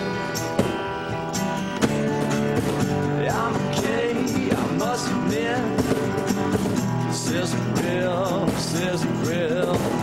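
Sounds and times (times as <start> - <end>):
acoustic guitars strumming: 0.0 - 10.0
cajon beat: 0.0 - 10.0.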